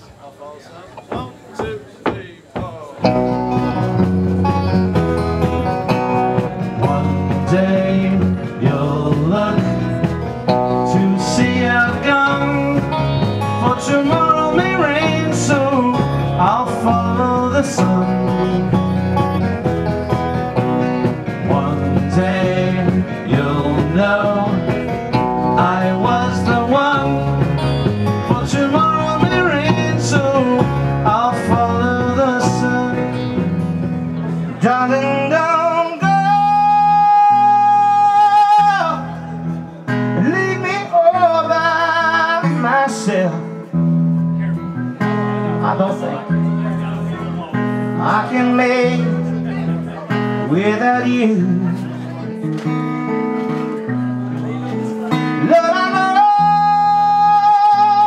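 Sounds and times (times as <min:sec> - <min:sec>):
live rock band playing: 0:01.0 - 0:58.0.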